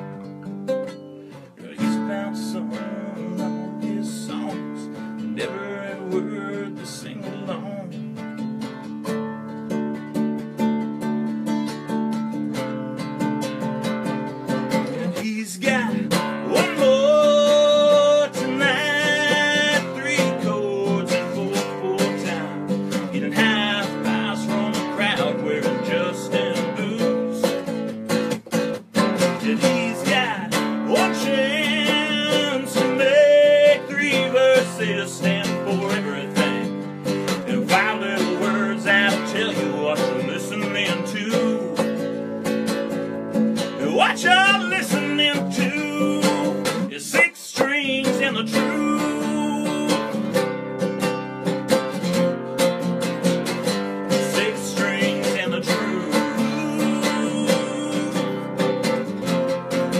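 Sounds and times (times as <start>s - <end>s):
acoustic guitar strumming: 0.0s - 59.9s
man singing: 1.4s - 8.6s, 14.7s - 51.0s, 53.4s - 59.9s.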